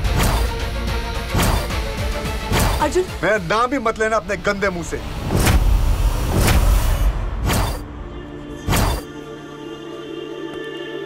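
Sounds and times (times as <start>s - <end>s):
swishing whooshes: 5.1s - 7.9s.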